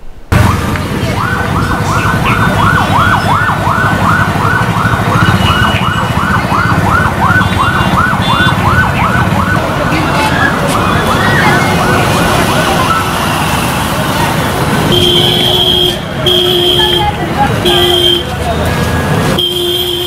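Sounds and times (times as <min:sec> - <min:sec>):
siren-like electronic warble: 0:00.3 - 0:13.4.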